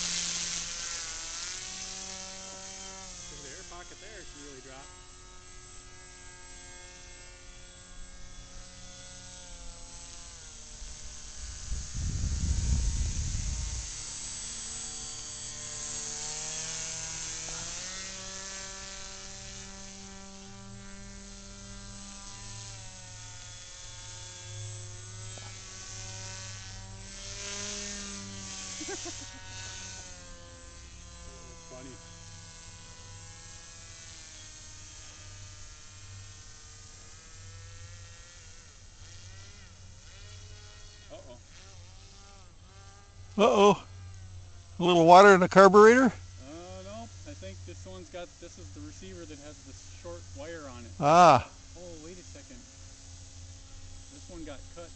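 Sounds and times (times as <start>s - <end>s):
electric motor and propeller whining: 0.0s - 54.9s.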